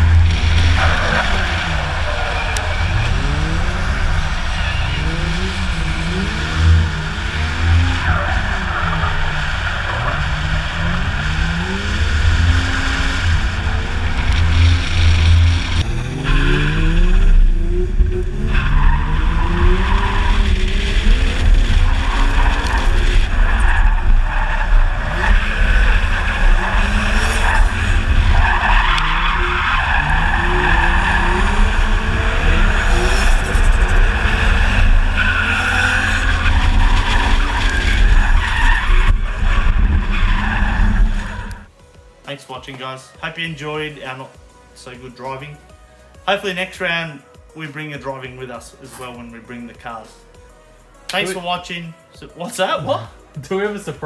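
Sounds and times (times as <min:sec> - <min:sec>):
car engine revving: 0:00.0 - 0:41.7
tyres skidding and squealing: 0:00.0 - 0:41.7.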